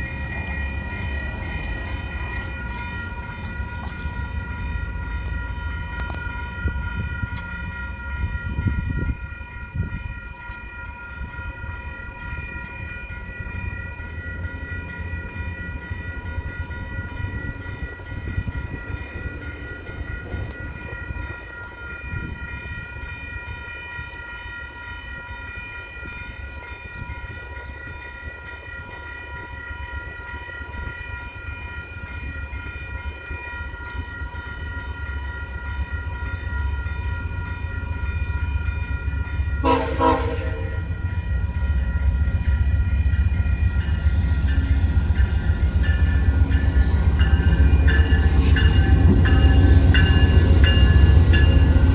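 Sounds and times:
diesel locomotive rumble: 0.0s - 24.8s
level crossing warning bells: 0.0s - 51.9s
locomotive horn blast: 39.6s - 41.0s.

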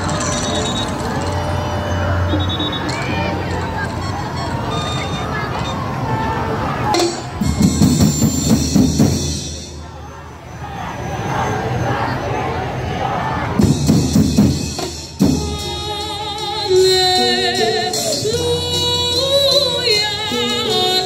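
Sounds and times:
music: 0.0s - 6.0s, 6.9s - 9.9s, 13.6s - 21.0s
voices: 0.0s - 8.5s, 9.2s - 14.0s
drum band playing: 6.8s - 10.0s, 13.6s - 18.4s.

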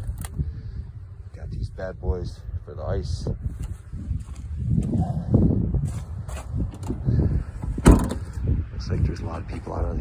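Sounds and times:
microphone handling rumble: 3.0s - 10.0s.

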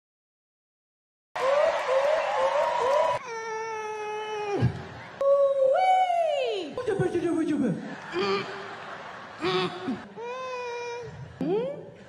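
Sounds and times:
audience cheering and applauding: 1.4s - 3.2s
crowd whoops: 1.4s - 3.2s.

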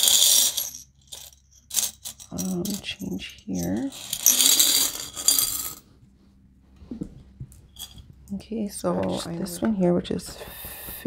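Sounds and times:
coins jingling in glass jar: 0.0s - 5.8s, 7.8s - 8.0s.

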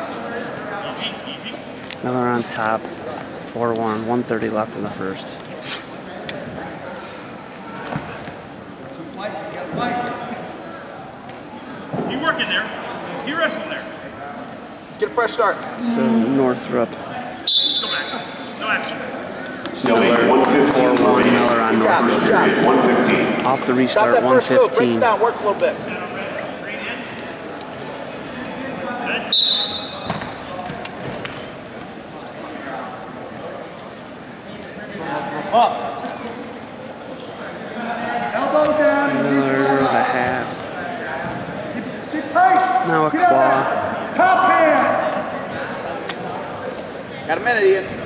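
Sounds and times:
murmur of voices: 0.0s - 48.0s
referee's whistle: 17.4s - 18.3s, 29.3s - 30.1s.

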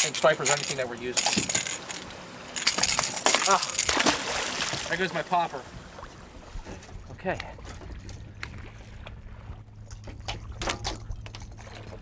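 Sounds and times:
steady low hum: 0.0s - 12.0s
fish thrashing and splashing: 2.6s - 4.9s.

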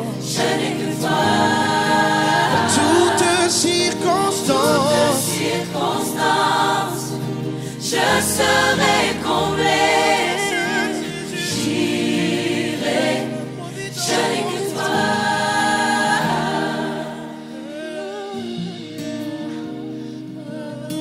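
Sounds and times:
choir singing held notes: 0.0s - 18.6s.

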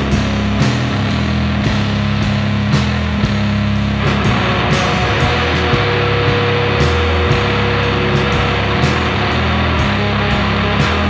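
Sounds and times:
distorted rock music: 0.0s - 11.0s.

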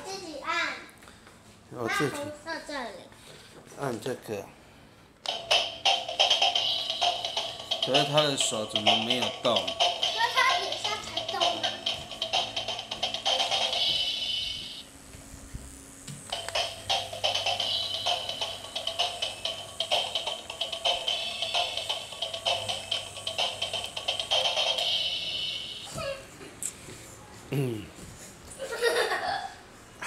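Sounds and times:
rapid clicking beat: 5.2s - 14.8s, 16.1s - 25.8s
toy playing tinny electronic tune: 5.3s - 14.8s, 16.3s - 26.0s.

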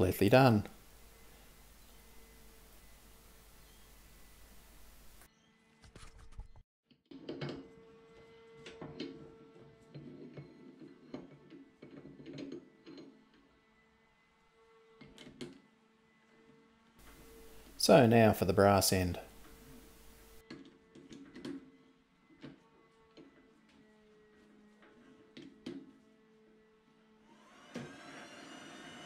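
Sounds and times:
faint steady hiss: 0.0s - 5.3s, 17.0s - 20.4s.

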